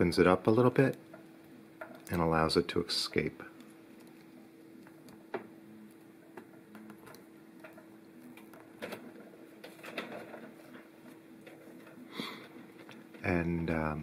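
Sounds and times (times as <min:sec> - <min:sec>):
faint steady hum: 0:00.0 - 0:14.0.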